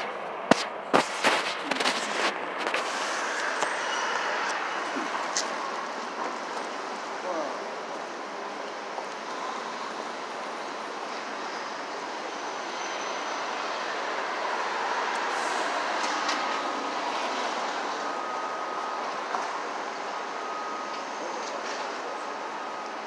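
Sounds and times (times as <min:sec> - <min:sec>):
city street traffic noise: 0:00.0 - 0:23.0.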